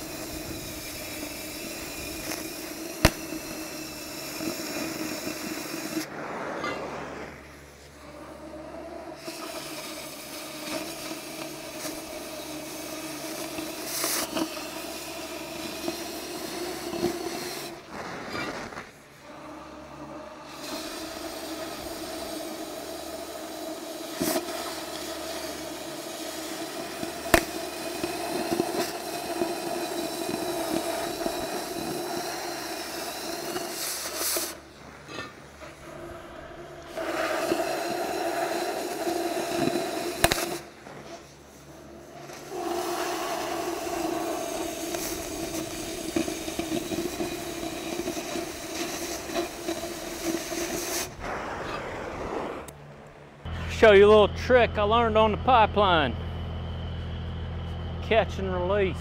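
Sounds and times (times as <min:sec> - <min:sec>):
sharp pops: 0:00.0 - 0:07.7, 0:09.2 - 0:15.0, 0:24.0 - 0:35.8, 0:36.8 - 0:41.3, 0:42.1 - 0:54.0
cutting torch hissing roar: 0:00.0 - 0:56.9.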